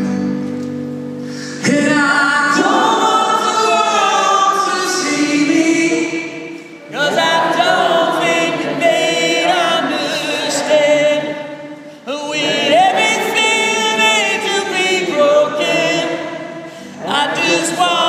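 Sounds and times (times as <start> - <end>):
acoustic guitar strumming: 0.0 - 18.0
singer and audience singing: 1.6 - 18.0.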